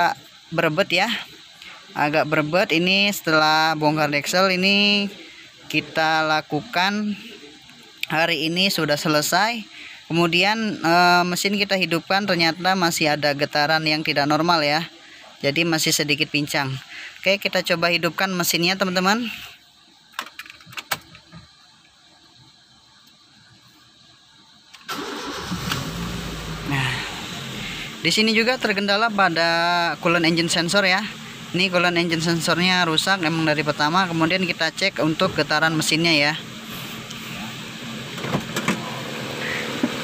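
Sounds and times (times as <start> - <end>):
car engine starting and idling: 24.0 - 40.0.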